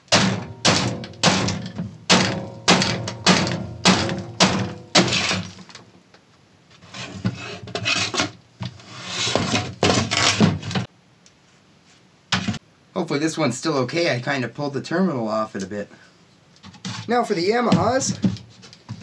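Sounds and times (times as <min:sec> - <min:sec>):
wood splintering and crunching: 0:00.0 - 0:05.8
wooden cabinet cracking and knocking: 0:00.0 - 0:05.9, 0:09.4 - 0:10.9, 0:16.6 - 0:19.0.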